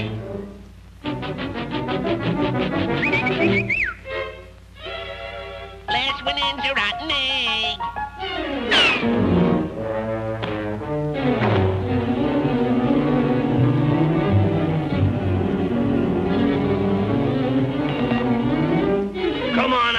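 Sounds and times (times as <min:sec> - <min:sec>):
orchestral cartoon music: 0:00.0 - 0:19.9.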